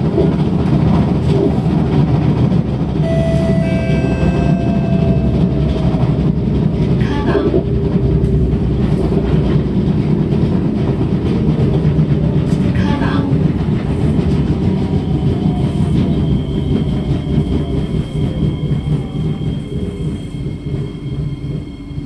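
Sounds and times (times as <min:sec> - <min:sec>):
train wheels rumbling on rail: 0:00.0 - 0:22.0.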